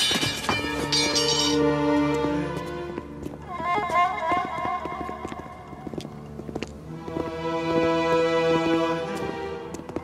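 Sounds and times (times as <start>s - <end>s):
dramatic orchestral music: 0.0s - 4.2s, 6.8s - 10.0s
many footsteps pattering: 0.0s - 10.0s.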